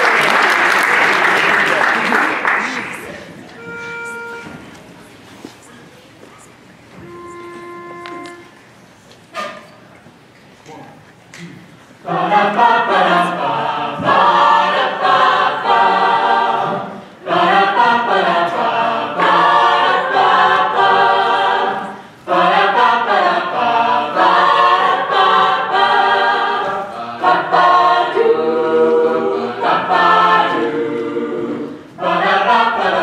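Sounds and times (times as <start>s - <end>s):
a cappella group singing in harmony: 12.0s - 33.0s.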